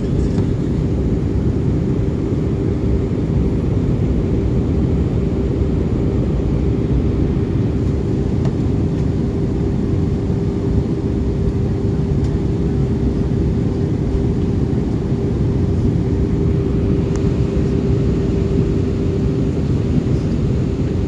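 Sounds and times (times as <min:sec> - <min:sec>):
jet engine and airflow noise: 0:00.0 - 0:21.0
steady hum: 0:00.0 - 0:21.0.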